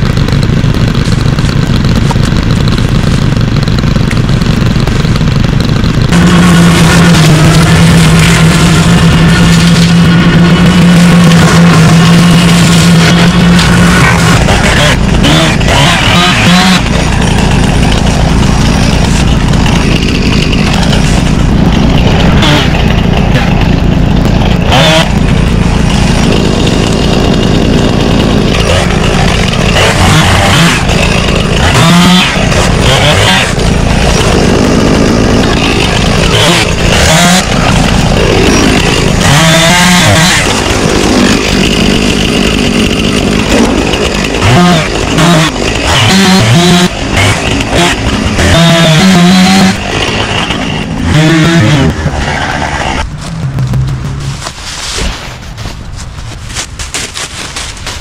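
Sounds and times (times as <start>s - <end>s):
chainsaw revving: 0.0s - 58.0s
low engine hum: 49.4s - 58.0s.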